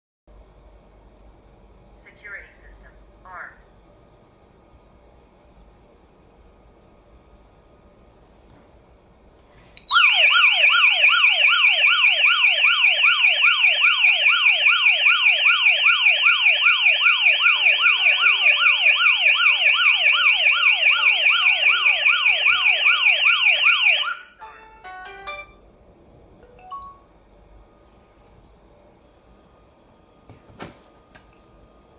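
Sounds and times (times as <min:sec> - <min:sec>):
alarm siren falling whoop: 0:09.8 - 0:24.4.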